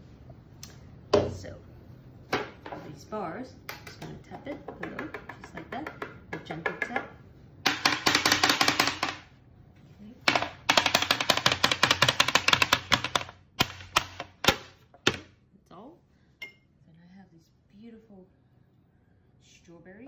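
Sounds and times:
plastic mould tapping on tray: 3.7s - 7.1s, 7.7s - 9.3s, 10.3s - 15.3s.

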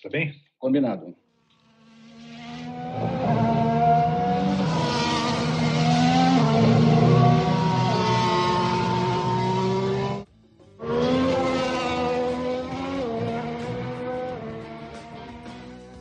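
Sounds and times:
racing car engines revving high: 1.5s - 16.0s.

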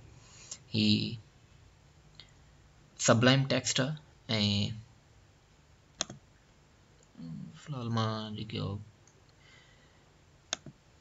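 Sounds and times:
computer mouse click: 6.0s - 6.2s, 10.5s - 10.8s.

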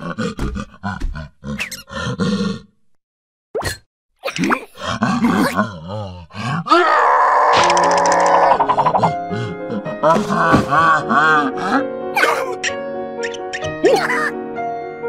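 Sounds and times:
cartoon creature grunts and groans: 0.0s - 2.8s, 4.2s - 12.7s, 13.6s - 14.4s
wavering pitch-bending vocal sounds: 4.2s - 9.2s.

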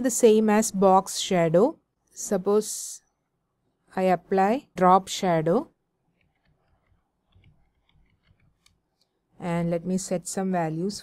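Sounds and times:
keyboard typing: 6.1s - 9.1s.

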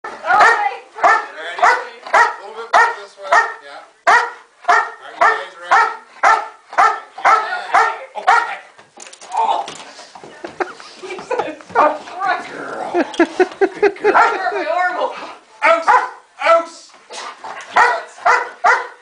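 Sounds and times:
dog barking: 0.3s - 8.6s, 14.0s - 14.4s, 15.8s - 16.2s, 17.7s - 19.0s.

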